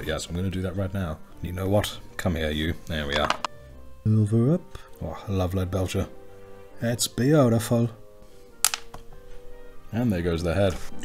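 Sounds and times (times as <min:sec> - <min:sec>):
soft background music: 0:00.0 - 0:11.0
plastic piece clicking on desk: 0:08.6 - 0:09.0.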